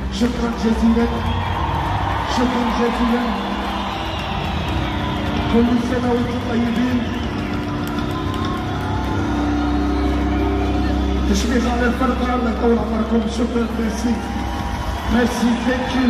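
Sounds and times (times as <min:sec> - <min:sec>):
concert music: 0:00.0 - 0:16.0
crowd noise: 0:00.0 - 0:16.0.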